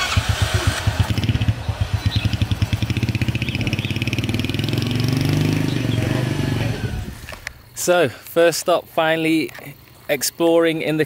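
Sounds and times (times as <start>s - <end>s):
motorcycle engine kick-started: 0.0s - 5.6s
motorcycle engine revving: 0.0s - 7.4s.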